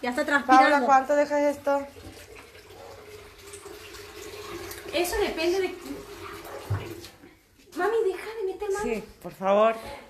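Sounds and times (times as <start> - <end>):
water running from tap: 0.0 - 9.0.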